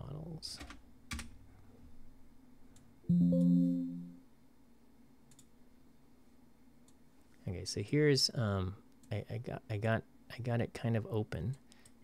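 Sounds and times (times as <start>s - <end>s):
computer alert chime: 3.1s - 4.2s.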